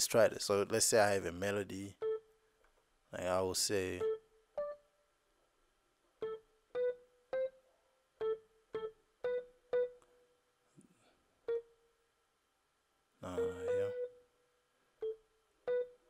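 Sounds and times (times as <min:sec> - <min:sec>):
piano-like melody notes: 0:06.2 - 0:07.6, 0:08.2 - 0:10.1, 0:13.2 - 0:14.3, 0:15.0 - 0:16.0.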